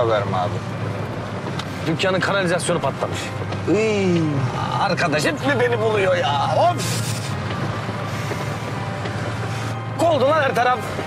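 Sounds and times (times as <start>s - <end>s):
car engine hum: 0.0s - 11.0s
road and rain noise: 0.0s - 11.0s.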